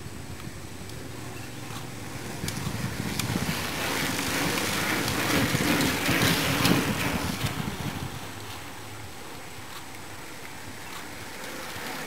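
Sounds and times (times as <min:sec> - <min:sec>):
bicycles passing on wet road: 0:00.2 - 0:12.0.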